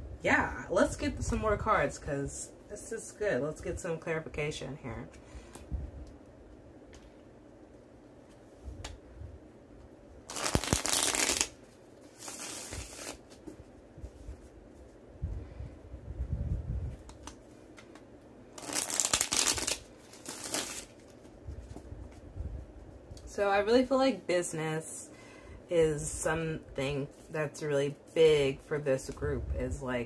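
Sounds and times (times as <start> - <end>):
cards being shuffled: 10.3 - 14.5, 16.9 - 22.2
soft handling noise: 11.6 - 18.3, 20.9 - 23.4.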